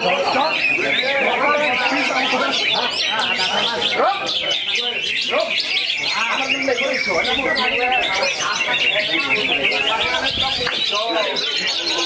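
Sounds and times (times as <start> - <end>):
birdsong chirps and whistles: 0.0 - 12.0
people's voices: 0.0 - 12.0.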